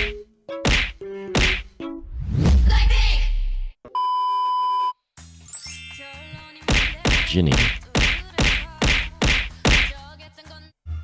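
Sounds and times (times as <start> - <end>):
whack hit sound effects: 0.7 - 1.7.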